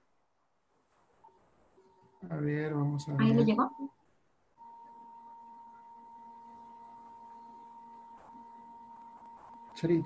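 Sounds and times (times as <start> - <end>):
weak hum: 0.9 - 10.0
high-pitched electronic tone: 2.0 - 3.9, 4.6 - 10.0.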